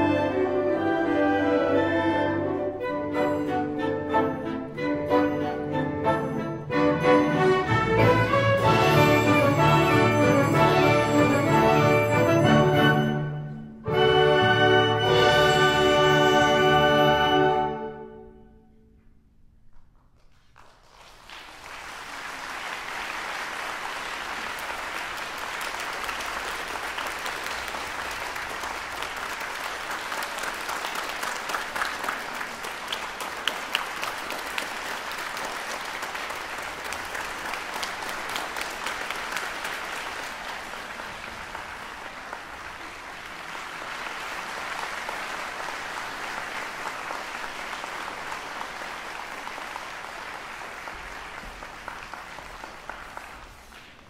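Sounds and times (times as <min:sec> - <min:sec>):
audience applauding: 0:20.2 - 0:54.0.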